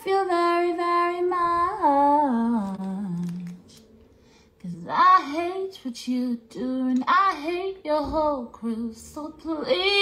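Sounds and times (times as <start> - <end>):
woman singing wordless line: 0.0 - 3.8, 4.6 - 10.0.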